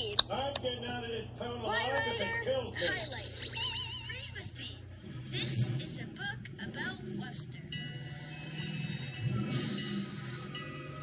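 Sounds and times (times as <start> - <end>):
cartoon music from television: 5.1 - 11.0.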